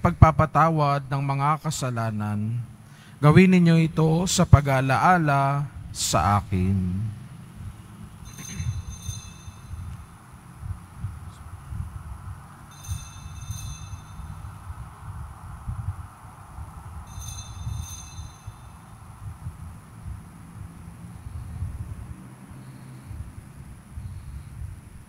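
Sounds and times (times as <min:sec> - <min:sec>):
low steady rumble: 0:00.0 - 0:25.0
altar bells ringing: 0:08.2 - 0:10.4, 0:12.6 - 0:15.0, 0:17.0 - 0:19.2.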